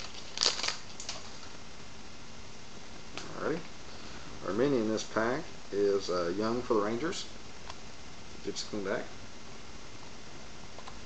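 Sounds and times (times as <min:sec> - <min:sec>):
papery rustle of cards: 0:00.0 - 0:01.6.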